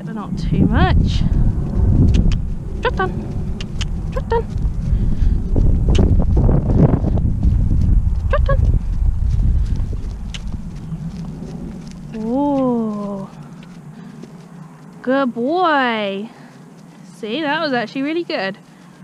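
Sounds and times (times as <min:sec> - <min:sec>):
low rumbling camera noise: 0:00.0 - 0:15.1
hoofbeats on turf: 0:00.4 - 0:19.0.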